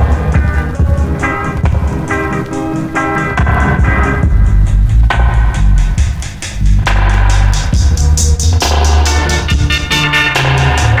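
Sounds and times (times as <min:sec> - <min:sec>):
bass line: 0:00.0 - 0:11.0
drums: 0:00.0 - 0:11.0.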